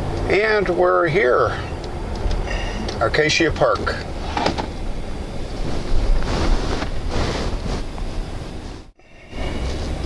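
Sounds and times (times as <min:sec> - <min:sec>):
car cabin road and wind noise: 0:00.0 - 0:10.0.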